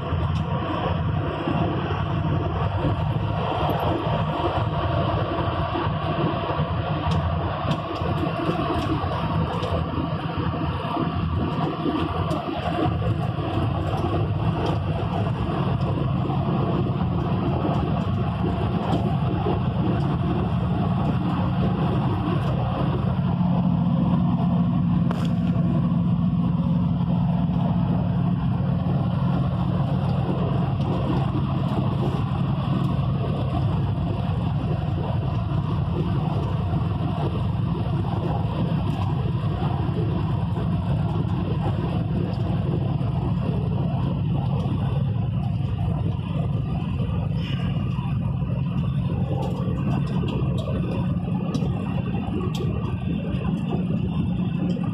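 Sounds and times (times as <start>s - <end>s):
vehicle engine and road noise: 0.0s - 54.9s.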